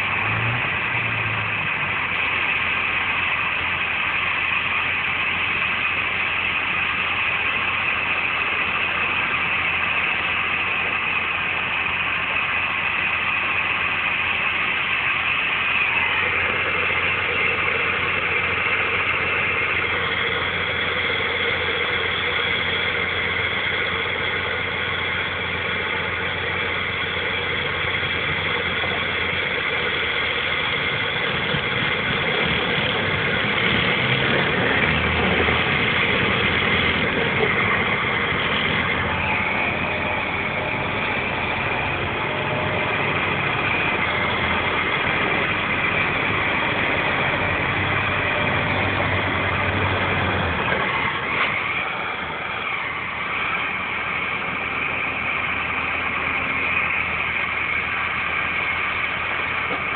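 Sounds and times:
diesel engine under heavy load: 0.0 - 59.9.

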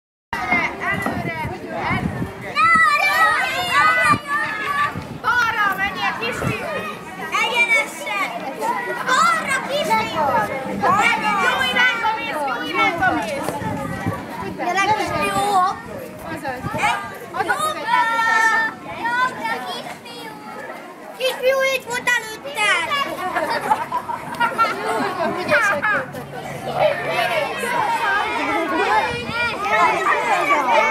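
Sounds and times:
children calling out: 2.4 - 14.1, 16.8 - 30.9.

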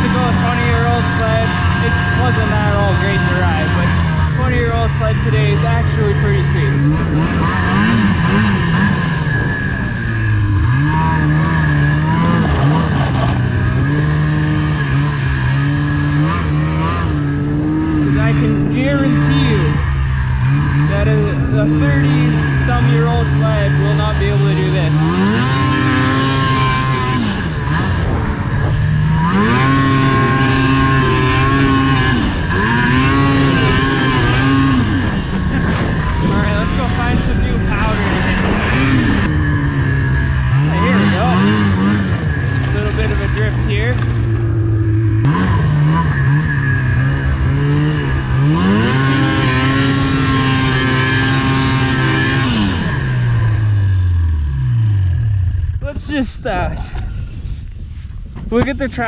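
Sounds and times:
snowmobile engine revving: 0.0 - 59.0.

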